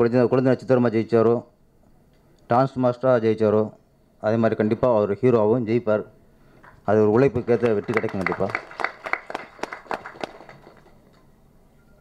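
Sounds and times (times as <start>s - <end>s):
audience hand clapping: 6.6s - 11.2s.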